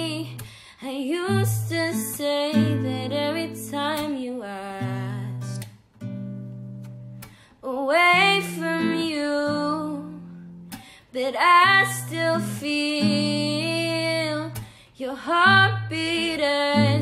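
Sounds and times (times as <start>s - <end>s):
woman singing slow song: 0.0s - 5.7s, 7.5s - 17.0s
acoustic guitar: 0.0s - 17.0s.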